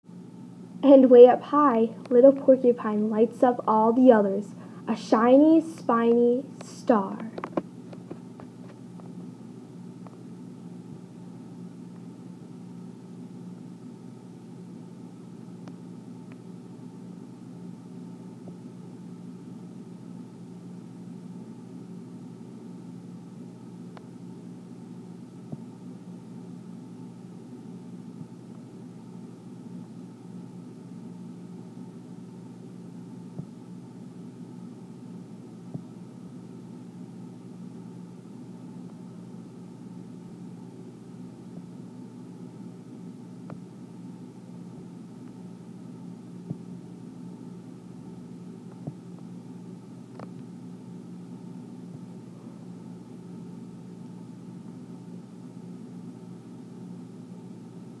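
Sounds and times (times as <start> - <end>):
low room hum: 0.1 - 58.0.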